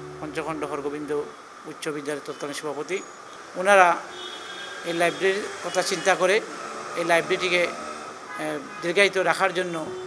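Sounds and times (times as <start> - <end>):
man talking: 0.2 - 3.0, 3.6 - 4.0, 4.9 - 6.4, 7.0 - 7.8, 8.4 - 10.0.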